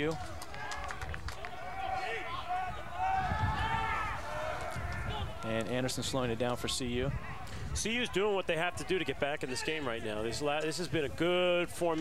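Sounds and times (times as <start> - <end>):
distant voices shouting: 0.0 - 5.6.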